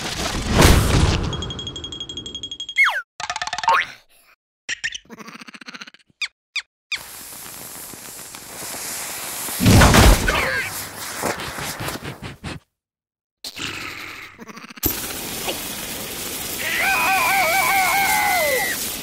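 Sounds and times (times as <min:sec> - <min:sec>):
squeaky cartoon vocal noises: 0:04.7 - 0:06.7, 0:13.5 - 0:14.9
firework rocket hissing: 0:07.0 - 0:11.3, 0:14.9 - 0:19.0.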